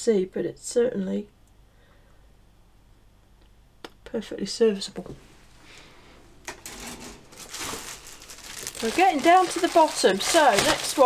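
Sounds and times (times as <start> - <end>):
plastic packaging rustling: 6.4 - 11.0.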